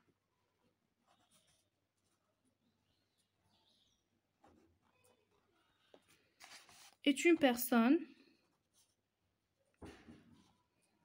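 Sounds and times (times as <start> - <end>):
ballpoint pen scratching on paper: 1.0 - 2.4.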